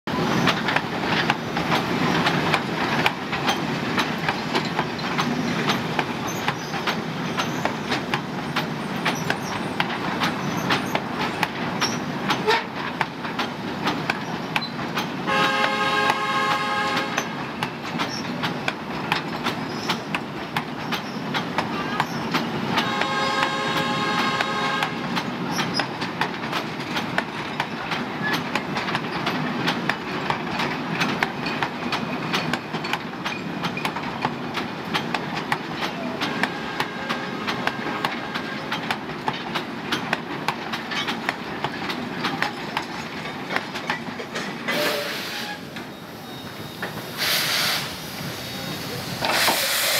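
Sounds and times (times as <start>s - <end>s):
train wheels clattering over rail joints: 0.1s - 49.9s
locomotive horn blasts: 15.3s - 17.4s, 22.8s - 25.1s, 36.3s - 38.7s, 44.7s - 45.7s.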